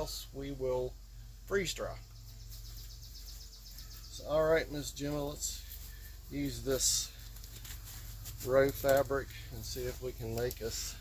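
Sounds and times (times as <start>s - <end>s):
low steady hum: 0.0s - 11.0s
small animal chirping trill: 2.2s - 4.2s.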